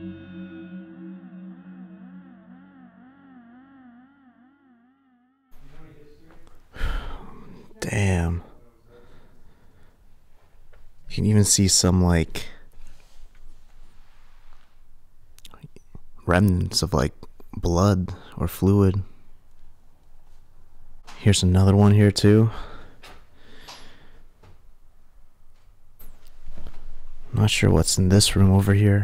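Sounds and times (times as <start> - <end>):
wavering electronic ambient music: 0.0 - 5.6
faint breathy noise: 5.6 - 7.8.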